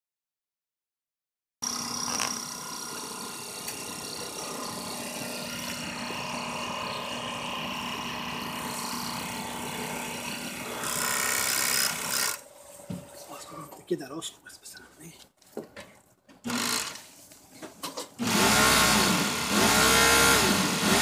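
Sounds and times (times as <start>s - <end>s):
sewing machine whirring: 1.6s - 12.5s, 16.4s - 17.0s.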